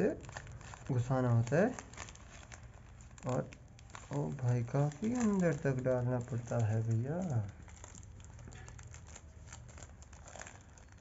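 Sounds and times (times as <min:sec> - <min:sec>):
balloon crinkling: 0:00.0 - 0:11.0.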